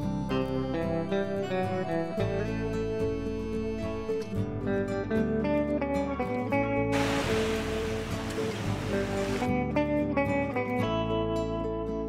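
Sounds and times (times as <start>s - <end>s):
soft background music: 0.0s - 12.0s
waves washing onto sand: 7.0s - 9.5s.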